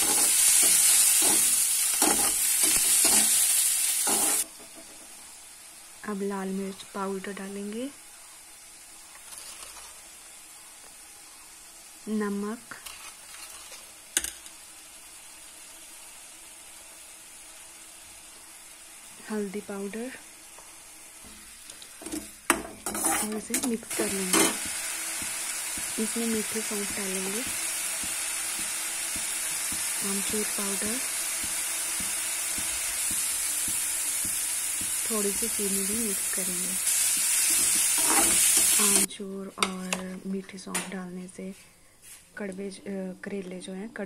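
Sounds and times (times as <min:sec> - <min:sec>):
onion sizzling in a pan: 0:00.0 - 0:39.9.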